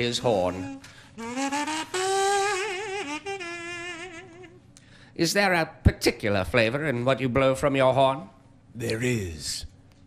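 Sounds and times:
handheld horn wavering notes: 0.3 - 4.6.

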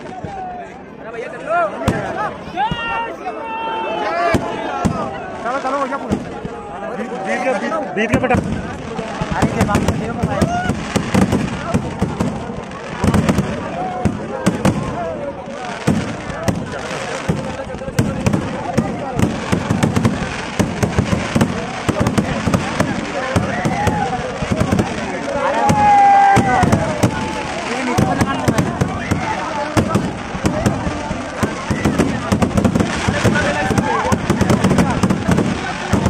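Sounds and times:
fireworks bangs and crackles: 0.0 - 3.2, 4.0 - 36.0
crowd voices: 0.0 - 36.0.

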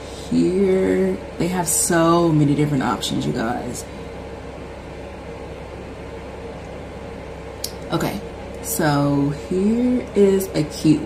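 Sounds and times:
low background hum and hiss: 0.0 - 11.0.

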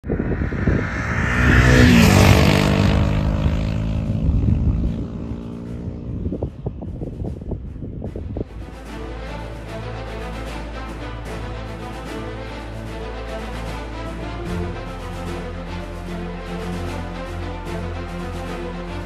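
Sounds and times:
engine passing by: 0.0 - 6.8
music: 5.5 - 19.0.

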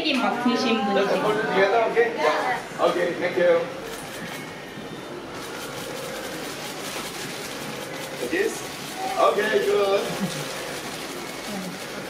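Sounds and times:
busy room noise: 0.0 - 12.0.

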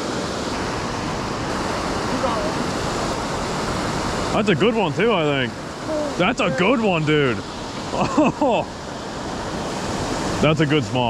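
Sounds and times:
water rushing over spillway: 0.0 - 11.0.

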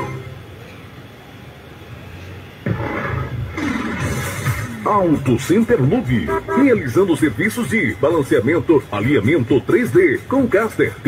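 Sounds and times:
loud rough noise: 2.6 - 6.8.

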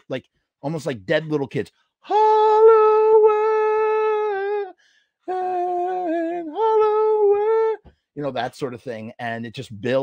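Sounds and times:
man singing wordless notes: 2.1 - 8.3.

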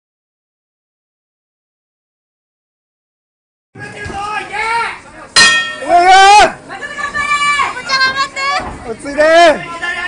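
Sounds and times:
people shouting: 5.4 - 7.9.

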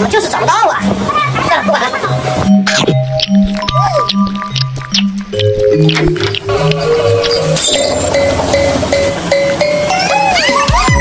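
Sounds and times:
music with bouncing bassline: 0.0 - 11.0
wet slurping and chewing: 2.7 - 7.6.

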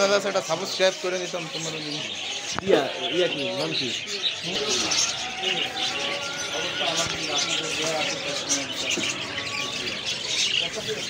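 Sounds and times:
caged birds chirping: 0.0 - 11.0.

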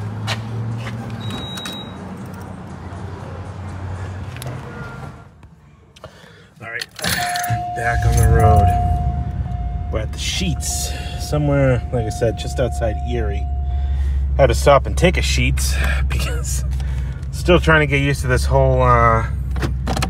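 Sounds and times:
car dashboard warning chime: 7.2 - 14.7
steady low hum: 7.4 - 15.0.

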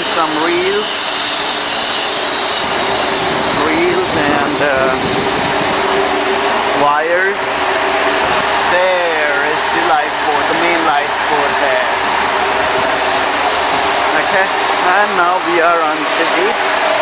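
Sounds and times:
machinery drone and hum: 0.0 - 17.0
indistinct voices: 2.8 - 5.1.

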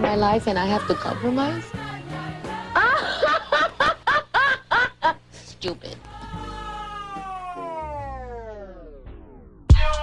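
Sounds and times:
woman wailing cry falling in pitch: 6.1 - 8.0.

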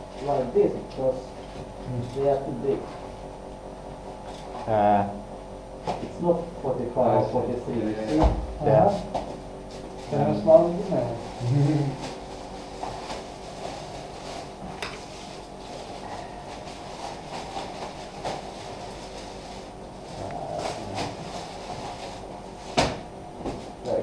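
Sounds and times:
room noise: 0.0 - 24.0.

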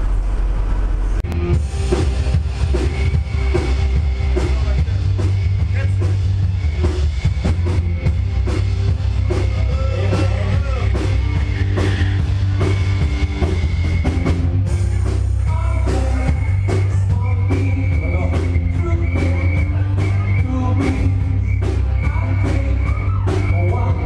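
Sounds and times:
drum kit beat: 1.2 - 24.0
rock band playing: 1.3 - 24.0.

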